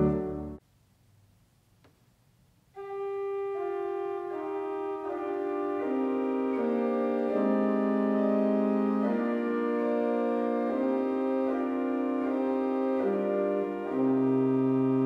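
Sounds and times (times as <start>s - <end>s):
pipe organ sustained chords: 2.8s - 15.0s.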